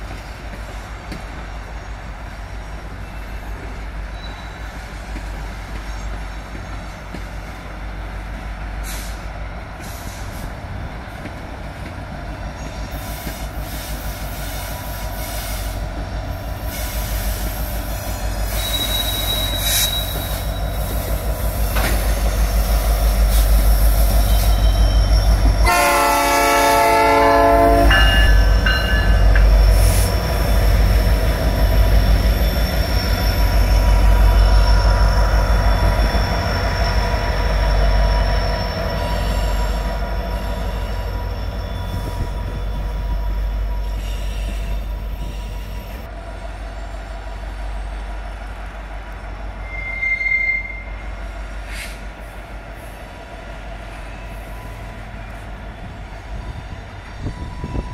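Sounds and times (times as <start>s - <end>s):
diesel locomotives rumbling: 0.0s - 57.9s
steel wheels squealing: 3.0s - 7.0s, 12.4s - 46.1s, 49.4s - 52.0s
locomotive horn: 25.6s - 28.6s.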